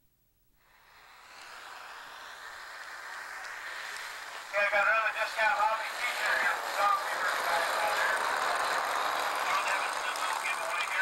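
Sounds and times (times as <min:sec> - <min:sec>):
model airplane engines running: 0:00.6 - 0:11.0
man talking: 0:04.5 - 0:08.3, 0:09.4 - 0:11.0.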